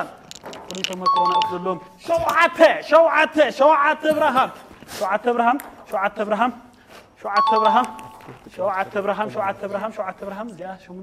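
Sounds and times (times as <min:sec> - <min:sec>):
two-tone bell-like chime: 0:01.1 - 0:01.9, 0:07.4 - 0:08.3.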